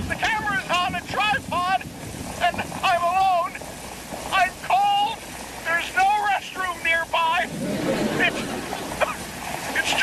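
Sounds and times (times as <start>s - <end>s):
rain: 0.0s - 10.0s
wind: 0.0s - 10.0s.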